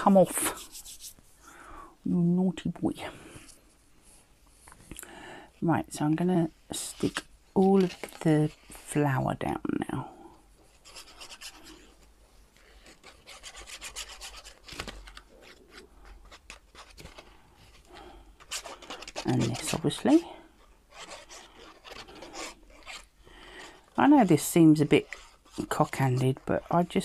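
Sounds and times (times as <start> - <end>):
paper rustling: 7.1 - 8.9, 10.8 - 20.2
glue bottle nozzle scraping paper: 12.6 - 17.3, 18.4 - 23.1, 23.7 - 27.0.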